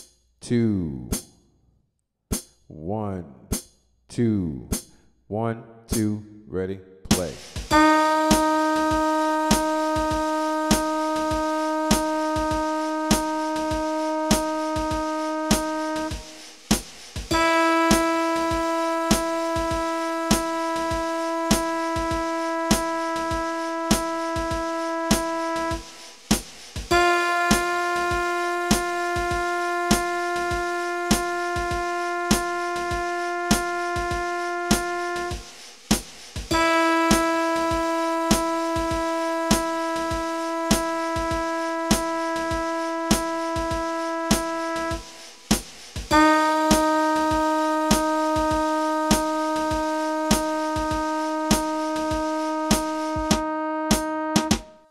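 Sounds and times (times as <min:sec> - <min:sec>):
held instrument tone: 0:07.7 - 0:16.5, 0:17.3 - 0:26.1, 0:26.9 - 0:35.5, 0:36.5 - 0:45.2, 0:46.1 - 0:54.7.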